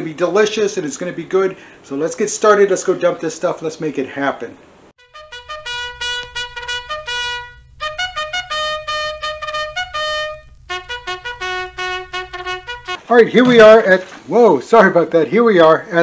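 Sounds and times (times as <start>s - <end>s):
solo trumpet tune: 5.0s - 13.0s.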